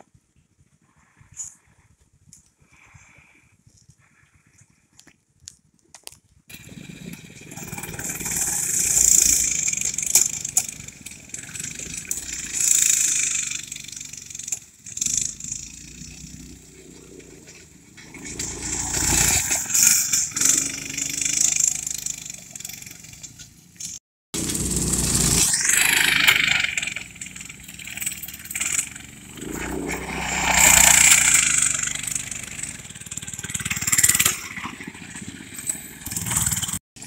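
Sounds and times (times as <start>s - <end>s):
small gasoline engines running: 6.5s - 37.0s.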